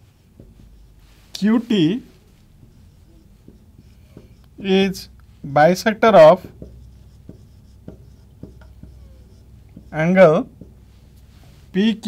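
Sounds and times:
marker writing on whiteboard: 0.0 - 11.8.

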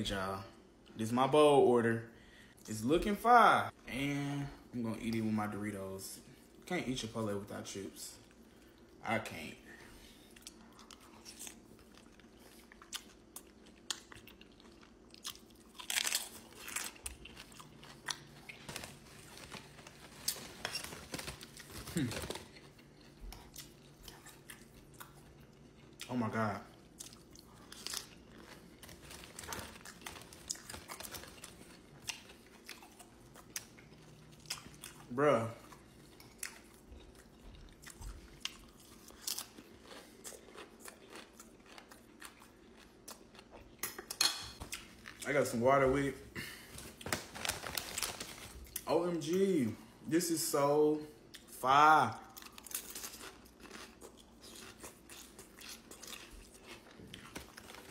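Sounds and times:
tortilla chip crunching: 10.4 - 45.6, 52.2 - 57.9.

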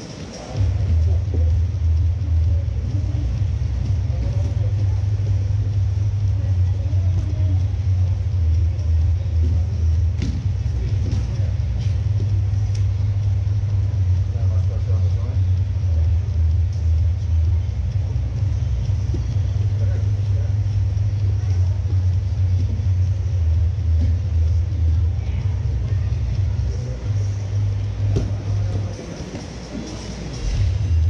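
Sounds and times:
indistinct voices: 0.0 - 31.0
deep rumble: 0.6 - 31.0.

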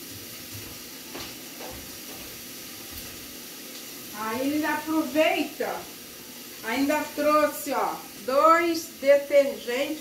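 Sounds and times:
steam hissing from pots: 0.0 - 10.0.

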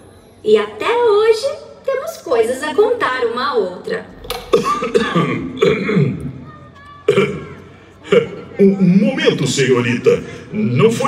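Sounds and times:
person coughing: 4.3 - 6.2
person clearing throat: 4.3 - 6.3, 7.1 - 8.4.

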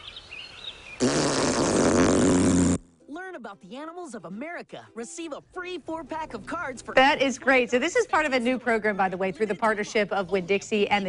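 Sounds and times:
snake hissing: 1.0 - 2.9.

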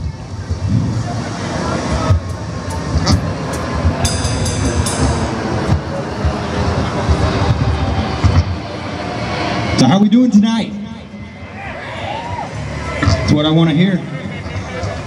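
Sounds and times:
distorted electric guitars: 0.0 - 15.0
bass drum hits: 3.0 - 6.4
cymbal crashes: 3.1 - 6.6.

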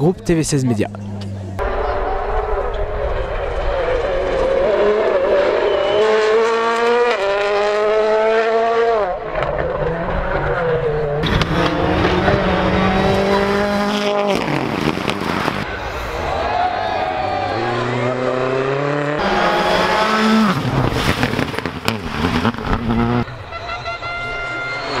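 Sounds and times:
rally car engines passing: 0.0 - 25.0.

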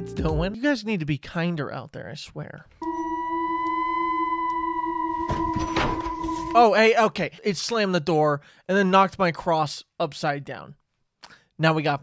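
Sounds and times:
eerie ringing tone: 2.8 - 6.6
door slamming: 5.1 - 6.6.

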